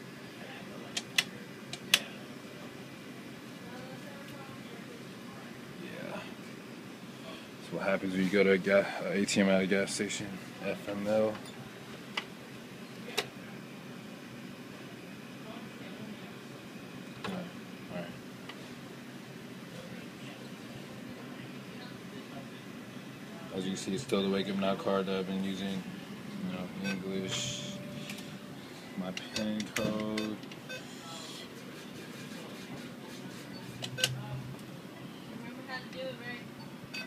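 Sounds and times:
low machine hum: 0.0s - 37.0s
keypad beep: 29.8s - 30.9s.

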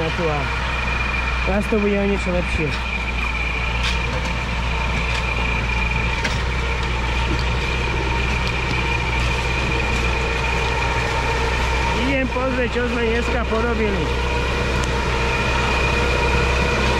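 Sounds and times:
diesel engine running: 0.0s - 16.9s
high whine: 0.0s - 16.9s.

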